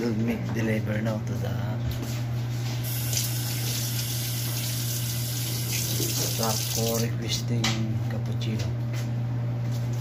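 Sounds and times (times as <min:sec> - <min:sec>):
steady low hum: 0:00.0 - 0:10.0
tap water running into sink: 0:02.9 - 0:07.1.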